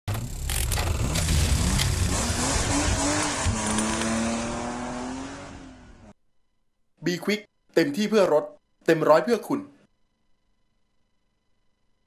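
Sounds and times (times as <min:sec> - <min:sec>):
race car engine: 0:00.1 - 0:06.1.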